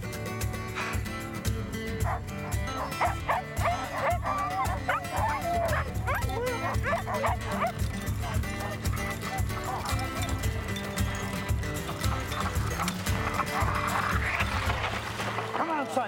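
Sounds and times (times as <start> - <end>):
background score music: 0.0 - 16.0
dog whining and whimpering: 2.1 - 10.5.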